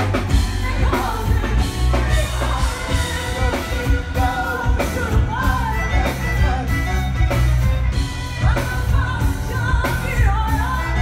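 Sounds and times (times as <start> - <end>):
live band playing: 0.0 - 11.0
woman singing: 0.0 - 11.0.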